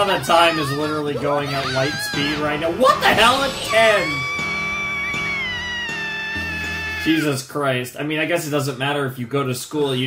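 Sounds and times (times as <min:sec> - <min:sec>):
background music with low notes: 0:00.0 - 0:08.8
high-pitched drawn-out cry: 0:00.2 - 0:07.2.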